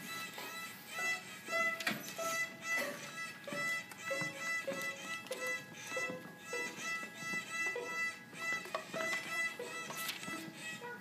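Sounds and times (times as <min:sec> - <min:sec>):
violin playing short bowed notes: 0:00.0 - 0:11.0.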